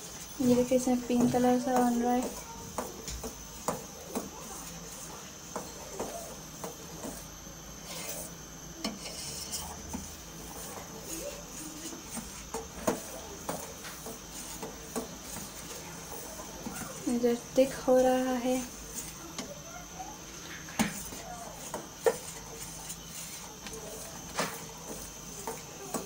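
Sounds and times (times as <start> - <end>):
metal spoon stirring in saucepan: 0.0 - 26.0.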